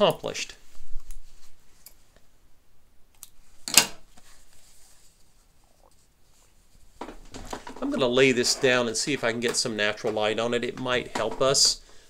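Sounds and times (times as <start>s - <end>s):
fabric rustle: 0.6s - 2.4s, 3.4s - 9.2s.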